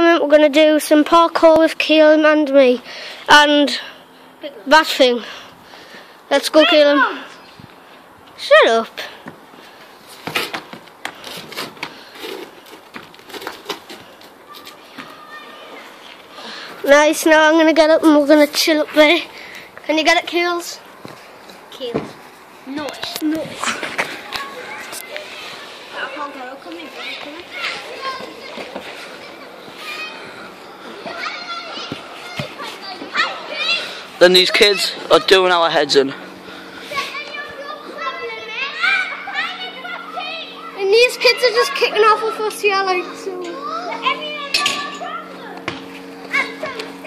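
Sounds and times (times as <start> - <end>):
children calling and shouting: 0.0 - 47.0
shoes scraping brickwork: 9.0 - 15.2.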